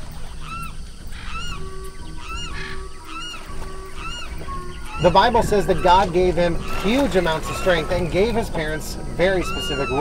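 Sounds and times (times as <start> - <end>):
bird-like calls: 0.0 - 10.0
held musical notes: 0.7 - 10.0.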